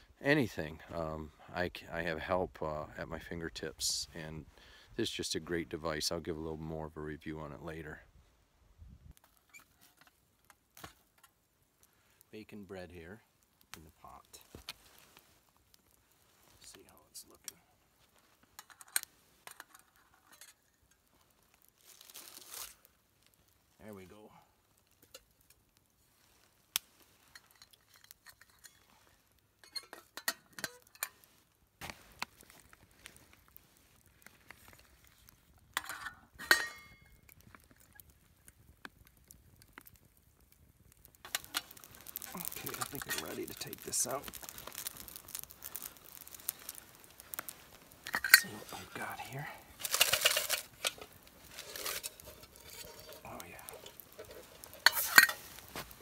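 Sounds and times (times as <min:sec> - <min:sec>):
campfire crackling: 0:00.0 - 0:56.0
metal pot lid clinking: 0:35.8 - 0:37.0, 0:48.1 - 0:48.5, 0:51.6 - 0:55.5.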